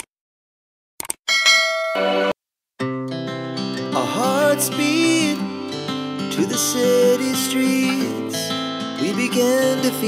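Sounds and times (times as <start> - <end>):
bright bell chime: 1.3 - 2.4.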